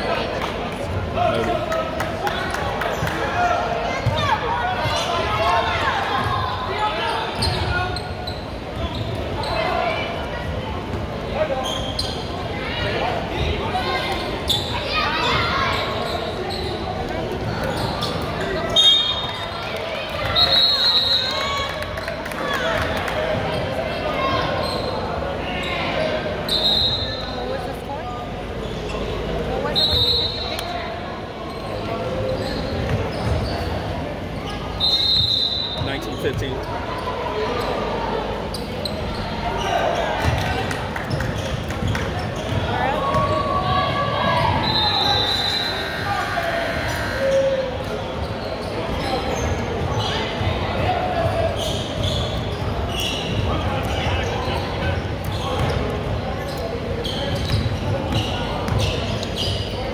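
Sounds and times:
sneakers squeaking: 2.2s - 59.9s.

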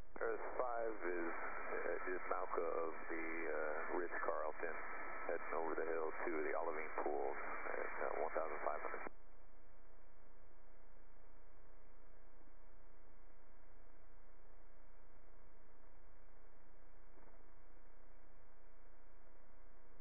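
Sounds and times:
voice over two-way radio: 0.2s - 9.1s.

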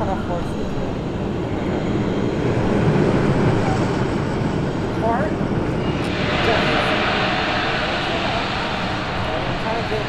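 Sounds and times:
roller coaster train rushing: 5.8s - 10.0s.

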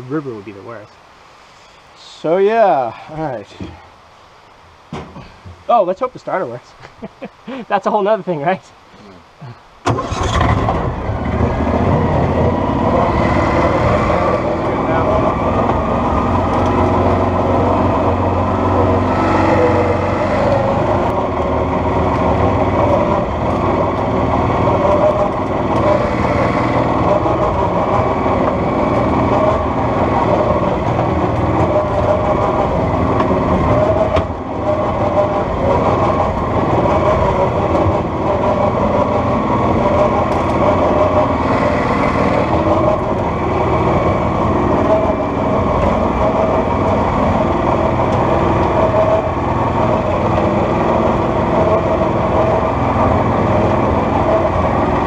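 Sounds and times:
atv engine running: 10.0s - 55.0s.

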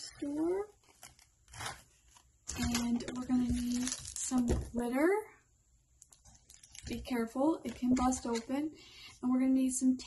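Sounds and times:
woman speaking: 0.0s - 0.8s, 2.5s - 5.4s, 6.9s - 10.0s
blister card rustling: 0.8s - 4.5s.

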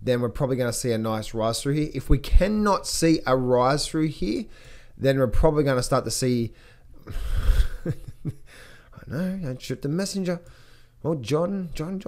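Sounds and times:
man laughing breathily: 7.0s - 9.0s.

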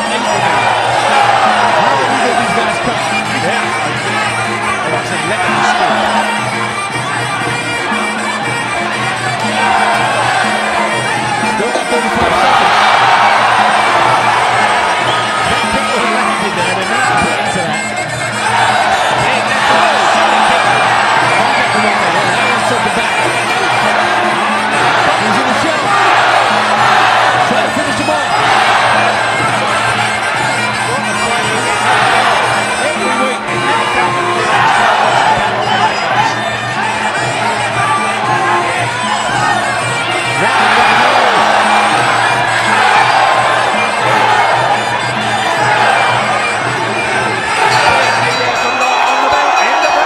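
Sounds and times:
crowd cheering and shouting: 0.0s - 50.0s
reedy oboe music: 0.0s - 50.0s.

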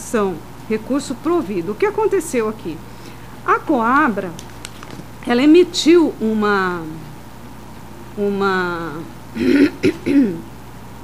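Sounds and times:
person clearing throat: 9.4s - 10.5s.

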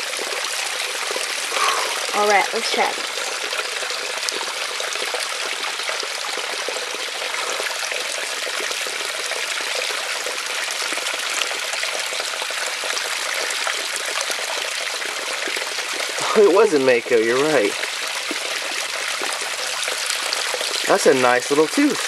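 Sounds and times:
creek water trickling and rushing: 0.0s - 22.0s.

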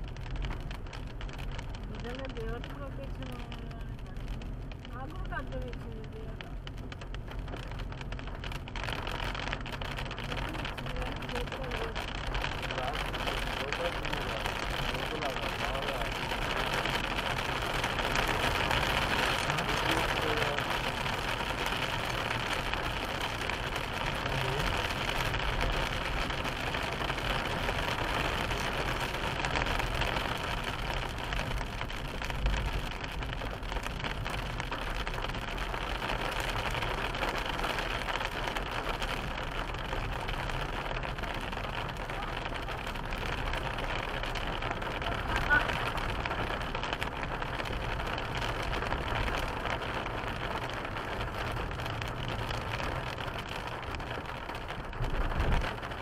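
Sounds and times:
car engine hum: 0.0s - 56.0s
tyres on wet road: 0.0s - 56.0s.

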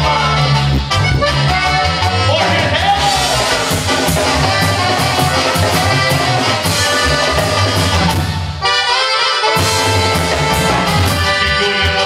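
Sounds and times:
accordion: 0.0s - 12.0s
drum kit: 0.0s - 12.0s
keyboard: 0.0s - 12.0s
live band playing upbeat music: 0.0s - 12.0s
saxophones: 0.0s - 12.0s.

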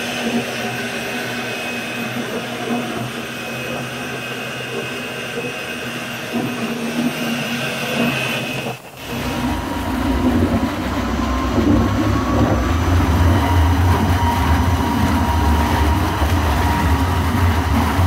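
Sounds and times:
liquid churning in tank: 0.0s - 18.0s
mixing machine running: 0.0s - 18.0s.

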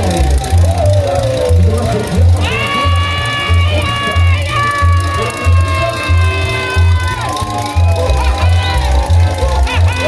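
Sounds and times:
crowd shouting and whooping: 0.0s - 10.0s
live carnival band music: 0.0s - 10.0s.

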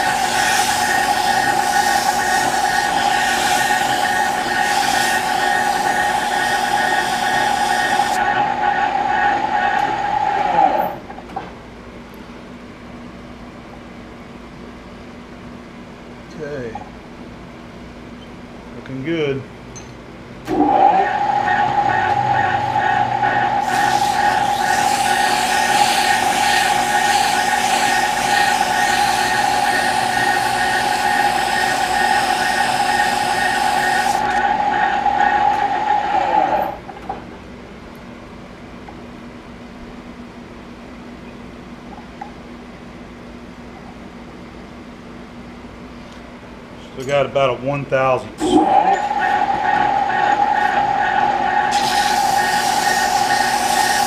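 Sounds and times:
abrasive cloth hissing on shaft: 0.0s - 8.2s, 23.6s - 34.4s, 51.7s - 54.0s
lathe whining: 0.0s - 11.0s, 20.5s - 36.8s, 48.4s - 54.0s.

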